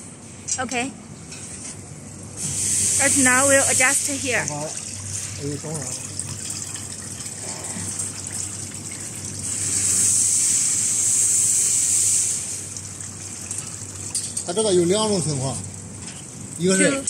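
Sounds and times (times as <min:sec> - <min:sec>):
loud hiss: 0:02.4 - 0:04.3, 0:09.4 - 0:12.7.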